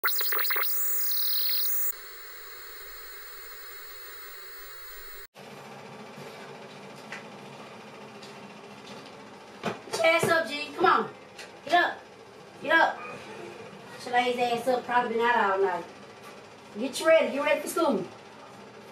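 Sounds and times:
television static hiss: 0.0s - 5.3s
warbling electronic glitch tones: 0.0s - 5.3s.

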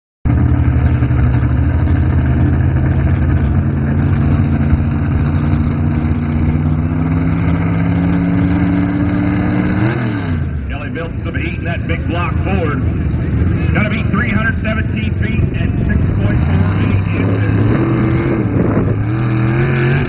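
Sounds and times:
truck engine revving under load: 0.3s - 20.0s.

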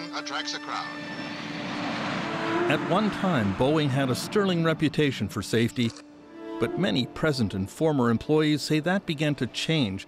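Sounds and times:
jet engines rushing: 0.4s - 5.2s.

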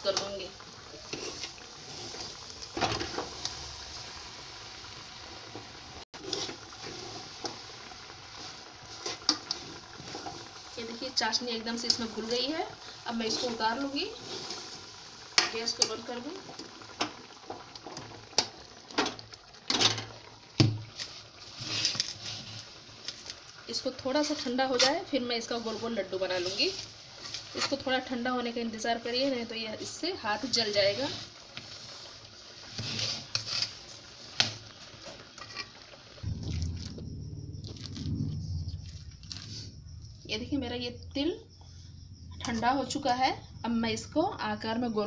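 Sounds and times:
metal spatula scraping a pan: 1.0s - 3.3s, 6.2s - 7.6s, 32.6s - 33.9s, 35.1s - 35.8s
spoon scraping a metal pan: 32.8s - 33.8s
steady low hum: 36.2s - 43.7s.

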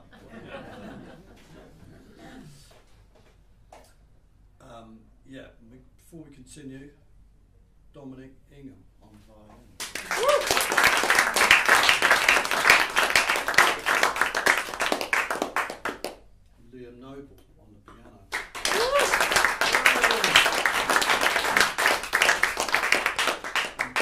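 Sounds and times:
small audience applauding: 9.8s - 16.2s, 18.3s - 24.0s
person whooping: 10.0s - 10.8s, 18.6s - 20.7s.

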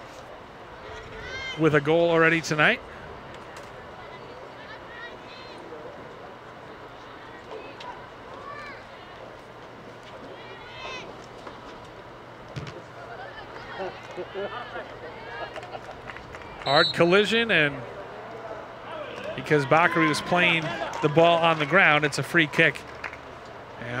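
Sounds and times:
background murmur: 0.0s - 24.0s
distant shouts and calls: 0.7s - 9.3s, 16.4s - 23.6s.

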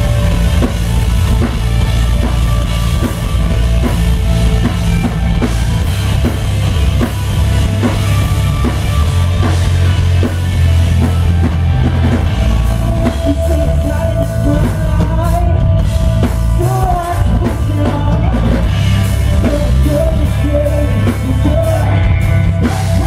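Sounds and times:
drum kit beat: 0.0s - 23.0s
electric bass: 0.0s - 23.0s
electric guitar: 0.0s - 23.0s.

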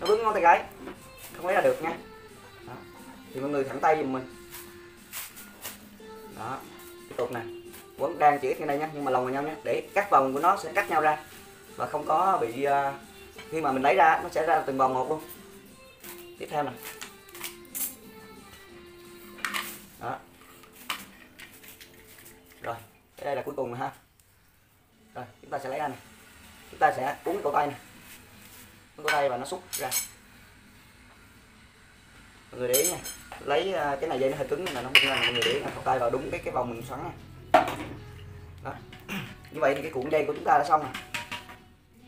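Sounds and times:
soft background music: 0.0s - 42.0s.

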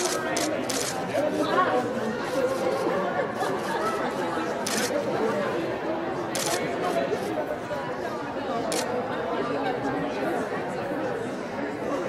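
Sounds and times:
camera shutters firing: 0.0s - 1.0s, 4.6s - 5.0s, 6.4s - 6.6s
chatter of voices: 0.0s - 12.0s.

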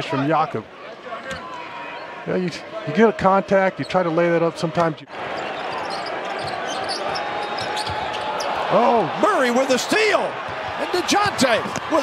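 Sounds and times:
arena crowd noise: 0.0s - 12.0s
sneaker squeaks: 5.4s - 8.6s.

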